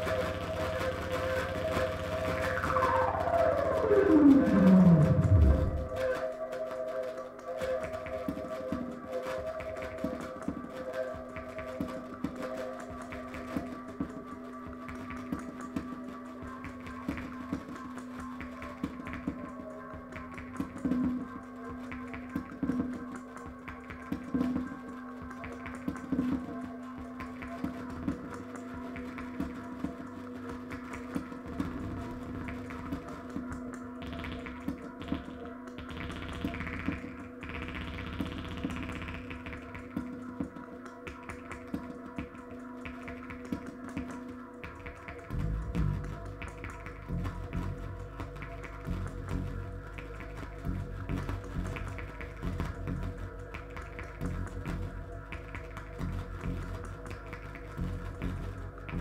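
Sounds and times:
electronic pulses: 0.0s - 9.9s, 44.8s - 59.0s
synthesizer drone: 0.0s - 59.0s.

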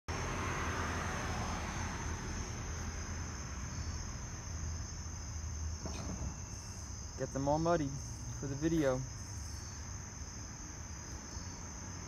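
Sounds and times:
crickets chirping: 0.1s - 12.0s.

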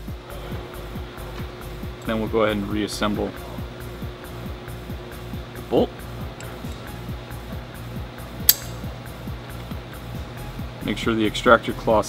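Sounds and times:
background music with steady beat: 0.0s - 12.0s
sharp metallic click of rifle bolt: 8.5s - 8.9s.

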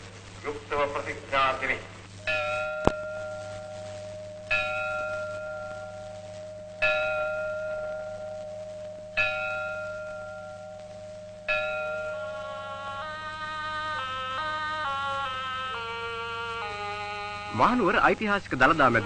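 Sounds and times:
faint low hum: 0.0s - 19.0s
bell strokes ringing: 2.2s - 13.4s.

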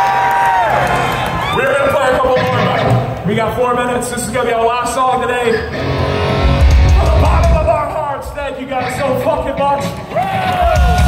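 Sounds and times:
man's voice: 1.5s - 5.7s, 6.6s - 11.0s
electric guitar chord ringing: 5.7s - 7.3s
heavy low bass: 5.8s - 7.9s.

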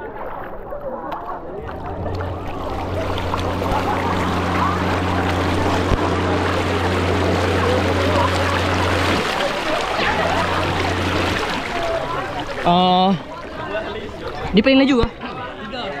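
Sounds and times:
water rushing and splashing: 1.5s - 15.2s
electric motor humming: 1.6s - 12.9s.

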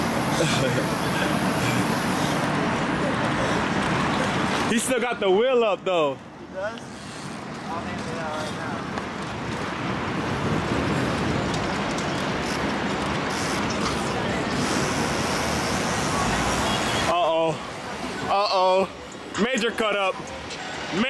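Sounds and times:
faint voices: 0.0s - 4.8s, 13.8s - 21.0s
road traffic noise: 0.0s - 21.0s.

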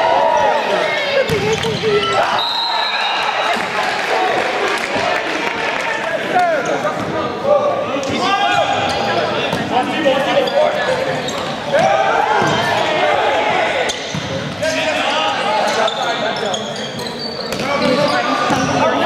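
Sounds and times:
people shouting and calling: 11.7s - 14.0s.

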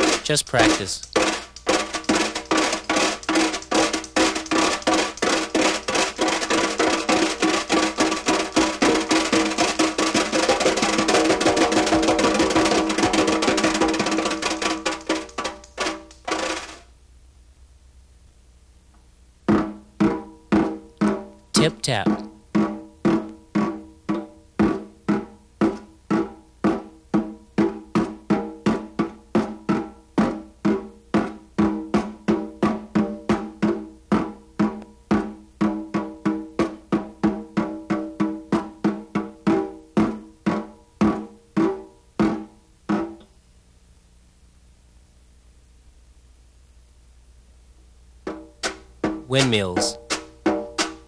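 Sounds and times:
wire brush taps on snare drum: 0.0s - 10.8s, 12.5s - 16.8s.

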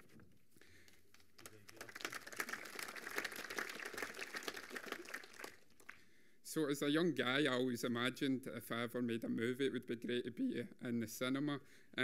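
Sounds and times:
audience applause: 1.4s - 6.0s.

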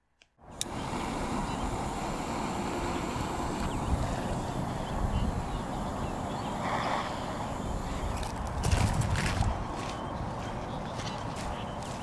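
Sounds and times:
steady hiss: 0.4s - 8.9s
jet torch lighter: 0.5s - 8.7s
wind rumble on microphone: 0.7s - 12.0s.

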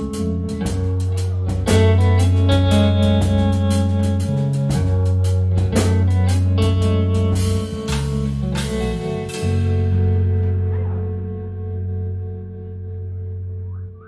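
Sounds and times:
drum kit beat: 0.0s - 12.0s
electric bass: 0.0s - 14.0s
electric guitar: 0.0s - 14.0s.

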